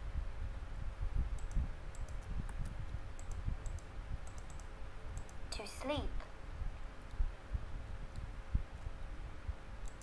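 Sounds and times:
computer keyboard keys clicking: 0:01.4 - 0:05.4.

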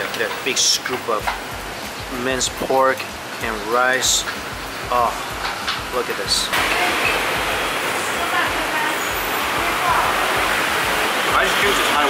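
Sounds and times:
ventilation unit hiss: 0:00.0 - 0:12.0.

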